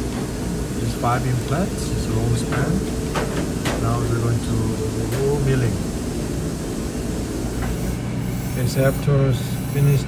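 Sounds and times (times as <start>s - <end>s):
steady mechanical noise: 0.0s - 10.0s.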